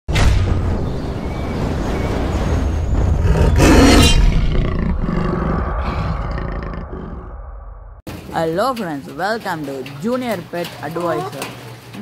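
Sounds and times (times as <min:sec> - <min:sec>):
big cat roaring: 0:03.2 - 0:07.4.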